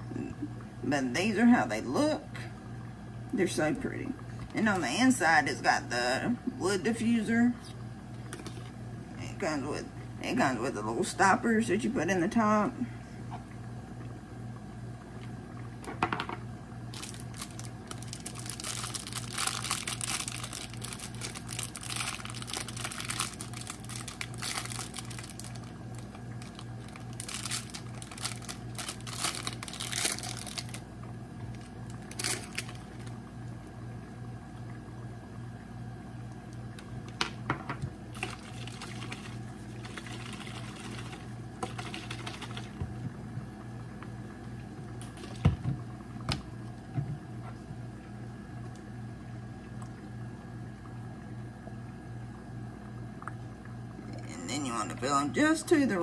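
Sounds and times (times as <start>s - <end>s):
steady low hum: 0.0s - 56.0s
plastic and paper wrapping crinkling: 16.9s - 30.8s, 31.5s - 33.1s.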